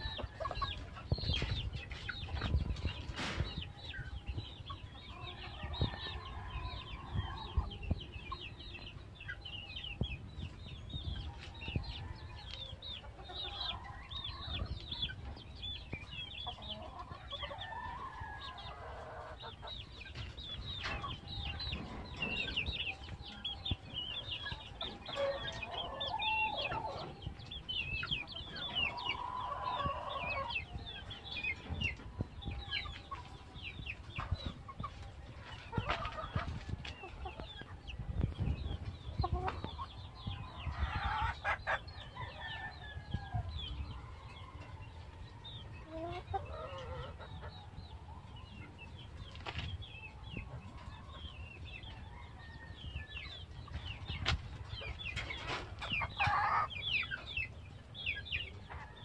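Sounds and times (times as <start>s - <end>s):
chickens clucking and calling: 0.0s - 59.0s.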